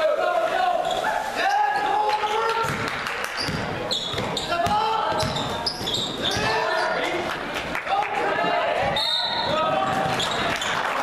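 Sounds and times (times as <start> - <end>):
sneaker squeaks: 0.8 - 1.3, 2.1 - 7.1, 8.8 - 10.8
basketball dribbling on hardwood: 2.6 - 6.7.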